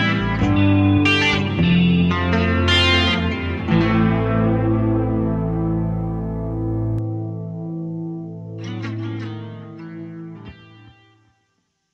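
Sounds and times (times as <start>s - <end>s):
electric guitar chord and notes: 0.0s - 11.6s.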